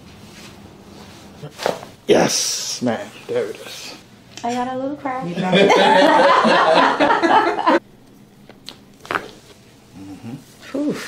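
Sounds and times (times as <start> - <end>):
person humming low: 9.9 - 10.5
person groaning: 9.9 - 10.9.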